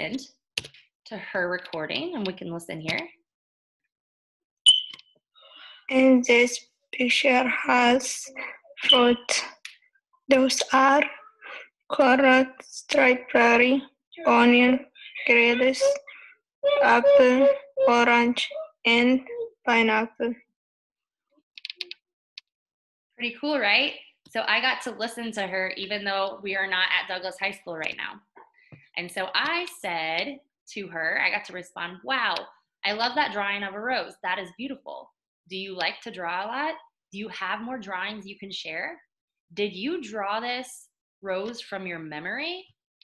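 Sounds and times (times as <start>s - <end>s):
recorded voice: 0.0s - 0.4s, 1.1s - 3.2s, 5.6s - 9.7s, 10.3s - 20.4s, 23.2s - 39.0s, 39.6s - 42.7s
short high-pitched beep: 4.7s - 5.0s.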